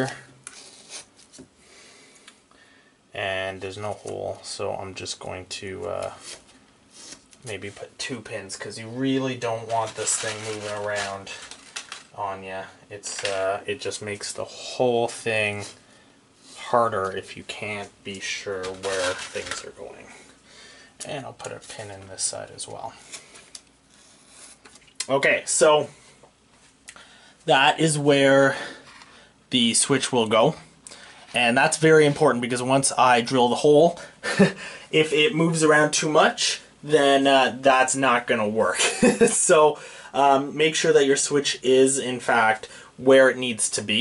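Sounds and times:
soft handling sounds: 5.8s - 20.4s, 21.0s - 34.5s.

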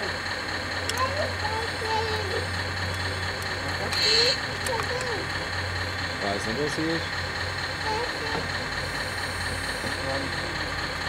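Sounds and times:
model machines low hum: 0.0s - 11.0s.

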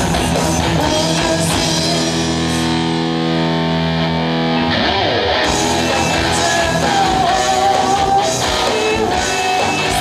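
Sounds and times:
distorted electric guitar chord: 0.0s - 10.0s
band with cymbals: 5.4s - 10.0s.

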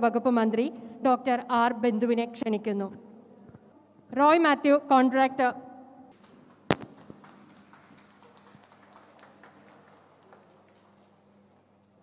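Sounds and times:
scattered hand claps: 6.1s - 12.0s.

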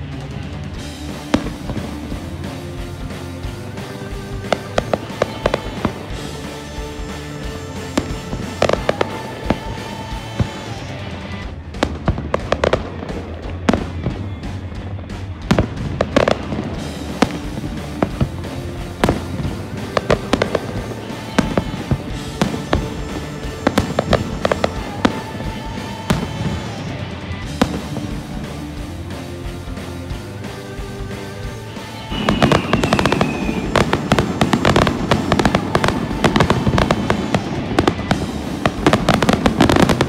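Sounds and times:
fireworks bangs and crackles: 0.0s - 40.0s.

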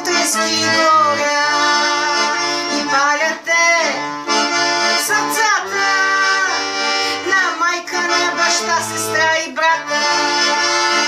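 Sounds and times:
piano accordion playing: 0.0s - 11.0s.

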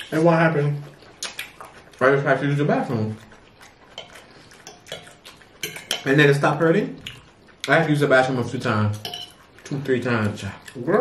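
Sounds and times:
forks clicking against plate: 4.0s - 6.2s, 8.9s - 9.4s.

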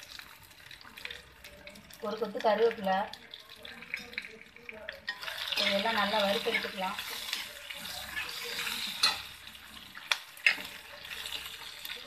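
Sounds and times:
spices sizzling in hot pan: 0.0s - 12.0s.

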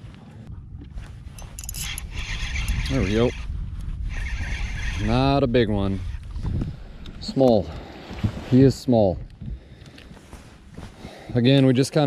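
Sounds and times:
wind rumble on microphone: 0.0s - 11.4s
fishing reel whirring: 1.4s - 3.5s, 4.1s - 5.4s.

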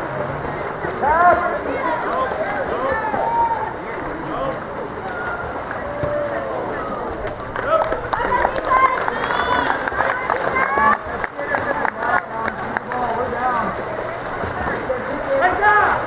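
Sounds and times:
swimmers splashing water: 0.0s - 16.0s
voices shouting and calling: 0.0s - 16.0s.

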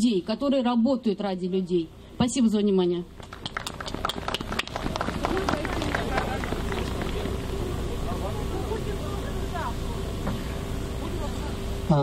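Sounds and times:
crowd applauding: 3.2s - 8.2s
voices in crowd: 4.6s - 12.0s.

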